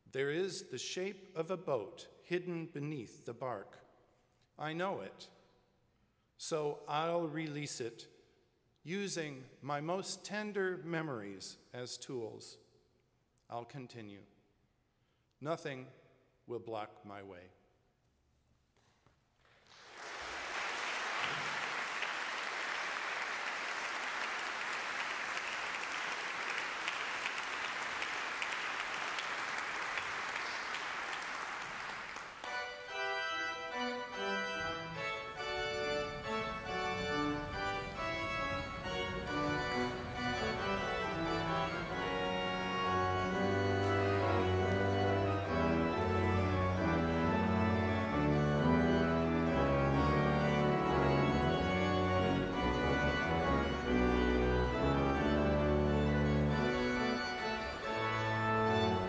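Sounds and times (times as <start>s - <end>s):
audience applauding: 19.6s - 33.2s, 35.3s - 46.7s
pipe organ chords: 21.0s - 59.0s
deep organ pedal bass notes: 32.4s - 59.0s.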